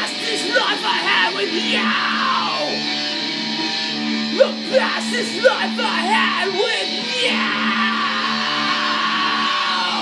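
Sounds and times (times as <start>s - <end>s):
electric guitar chord ringing: 0.0s - 10.0s.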